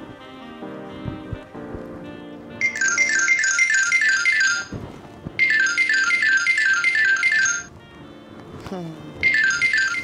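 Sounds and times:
mobile phone ringtone: 0:02.6 - 0:07.8, 0:09.2 - 0:10.0.

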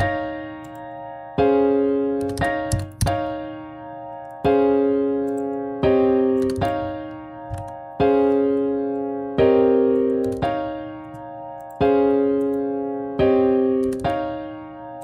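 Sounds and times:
piano block chords: 0:00.0 - 0:15.0.

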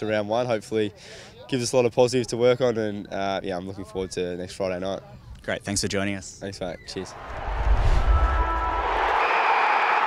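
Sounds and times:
loud whoosh: 0:07.1 - 0:09.2.

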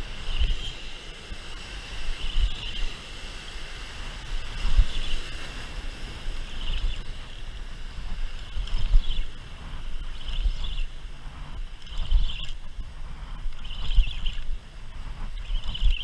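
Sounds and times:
wind: 0:00.0 - 0:16.0.

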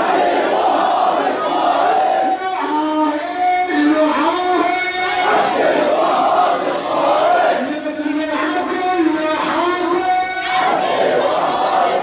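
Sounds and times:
crowd chanting in unison: 0:00.0 - 0:02.4, 0:05.1 - 0:07.7, 0:10.4 - 0:12.0.

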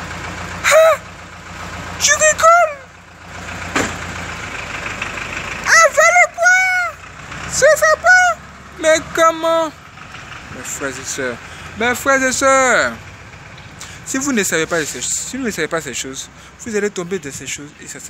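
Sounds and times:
man's high-pitched exclamations: 0:00.6 - 0:01.1, 0:02.0 - 0:02.9, 0:05.7 - 0:07.0.

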